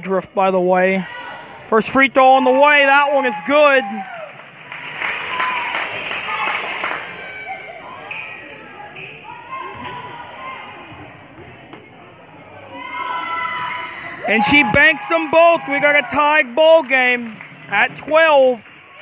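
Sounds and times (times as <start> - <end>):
crowd voices chattering and calling: 0.0 - 19.0.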